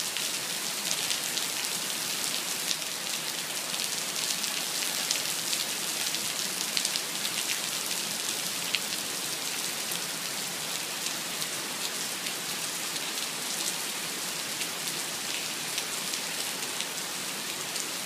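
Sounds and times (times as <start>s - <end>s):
heavy rain on asphalt and cars: 0.0s - 18.0s.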